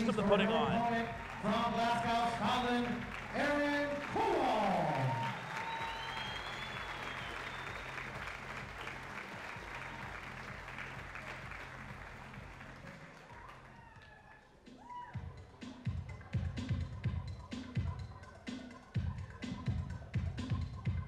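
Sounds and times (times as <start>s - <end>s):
crowd applauding: 0.0s - 14.6s
faint music with low beat: 0.0s - 21.0s.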